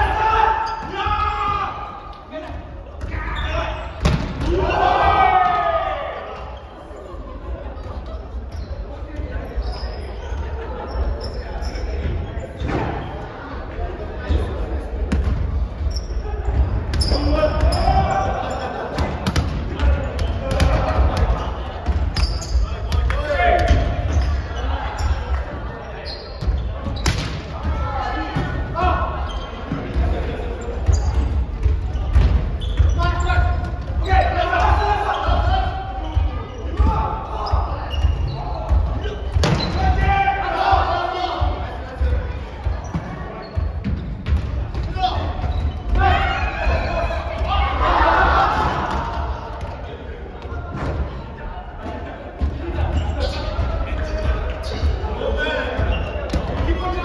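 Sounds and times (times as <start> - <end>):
players calling out: 0.0 - 57.0.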